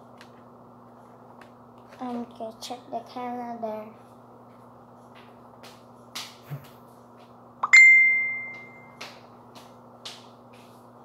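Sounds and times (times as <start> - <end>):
bell-like ding: 7.6 - 9.0.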